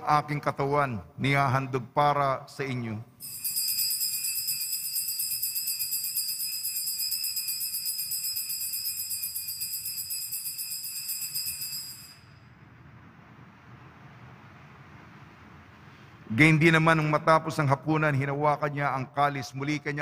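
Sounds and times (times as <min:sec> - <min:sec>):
altar bells shaken rapidly: 0:03.2 - 0:12.4.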